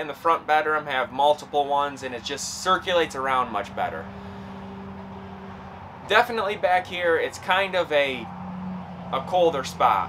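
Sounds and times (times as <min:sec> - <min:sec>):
low two-tone hum: 0:00.9 - 0:10.0.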